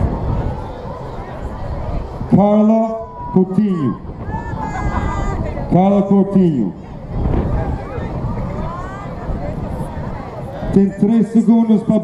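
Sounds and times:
distant voices: 0:00.0 - 0:12.0
steady low rumble: 0:00.0 - 0:12.0.

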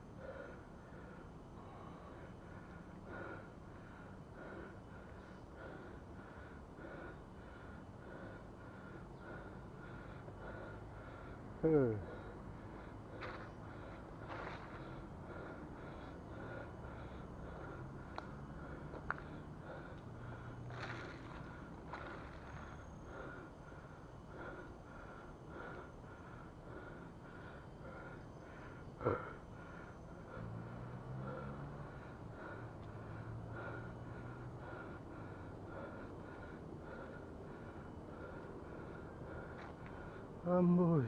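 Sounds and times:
cyclist breathing hard: 0:00.0 - 0:41.0.

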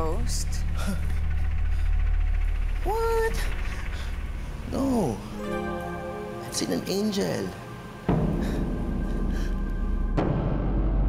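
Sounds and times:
deep sustained bass: 0:00.0 - 0:06.9
low drone background music: 0:00.0 - 0:11.0.

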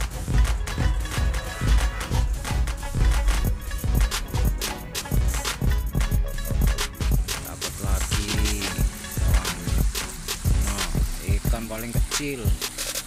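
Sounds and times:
background music with steady beat: 0:00.0 - 0:13.0
person speaking: 0:07.3 - 0:12.7.

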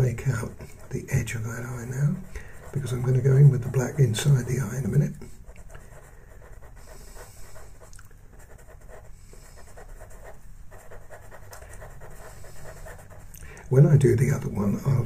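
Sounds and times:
pencil scratching on paper: 0:00.0 - 0:13.3.

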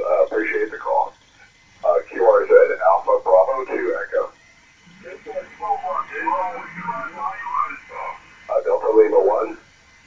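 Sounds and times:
thin radio voice: 0:00.0 - 0:01.1, 0:01.8 - 0:04.3, 0:04.9 - 0:09.6.

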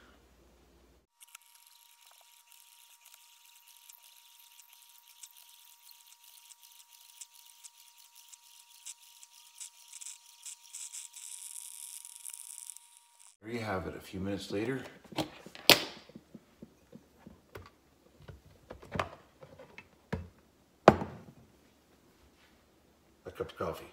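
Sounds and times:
coffee maker brewing: 0:01.1 - 0:13.4.

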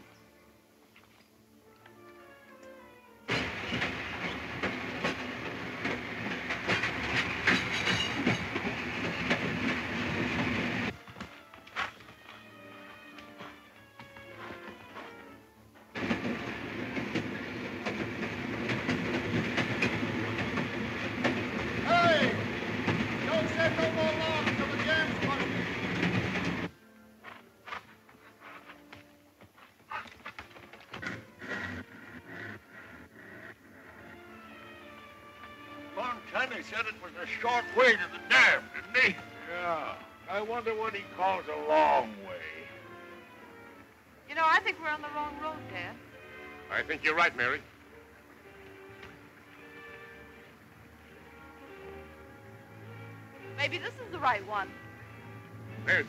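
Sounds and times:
background music: 0:00.0 - 0:56.0
clattering rumble of logging machinery: 0:03.3 - 0:12.0, 0:15.8 - 0:26.7.

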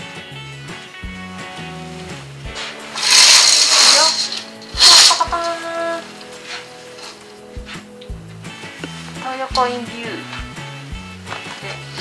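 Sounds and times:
background music: 0:00.0 - 0:12.0
curtain runners rattling on rail: 0:02.5 - 0:07.2.

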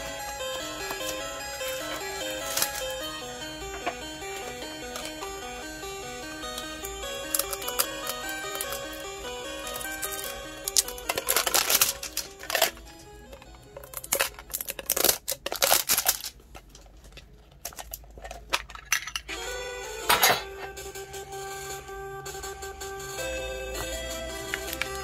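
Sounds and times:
background music: 0:00.0 - 0:15.2, 0:19.3 - 0:25.0
plastic wrap crinkling and tearing: 0:09.8 - 0:12.9, 0:13.9 - 0:18.5.

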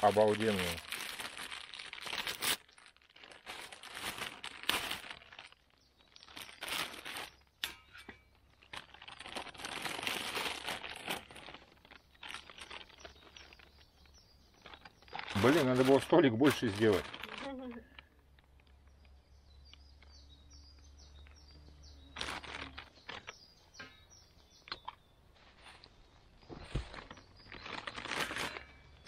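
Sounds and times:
plastic packaging crinkling: 0:00.0 - 0:18.5, 0:22.1 - 0:23.4, 0:26.6 - 0:29.0.

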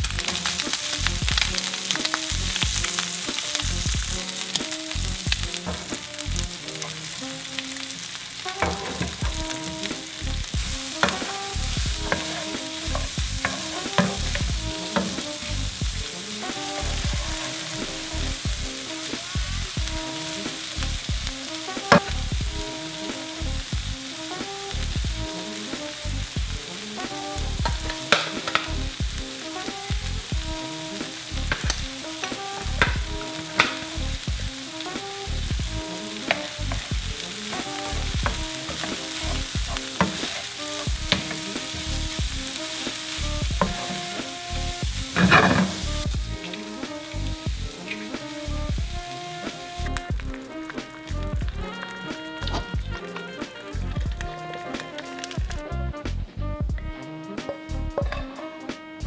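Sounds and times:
food sizzling in a frying pan: 0:00.0 - 0:55.8
wooden spatula knocking on pan: 0:08.6 - 0:09.8, 0:11.0 - 0:15.3, 0:38.2 - 0:41.8, 0:43.6 - 0:44.2.

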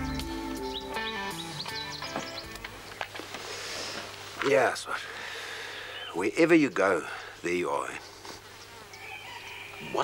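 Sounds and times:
flying insect buzzing: 0:08.2 - 0:10.0.

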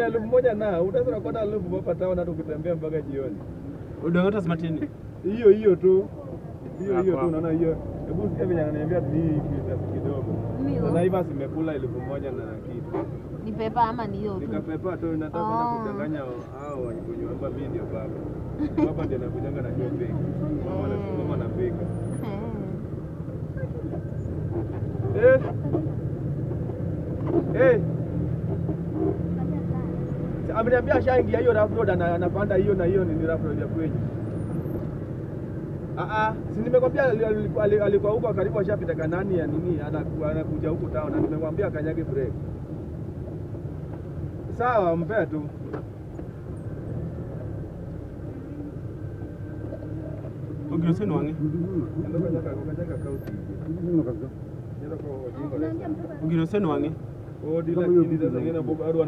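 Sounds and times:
engine and road noise: 0:00.0 - 0:59.0.

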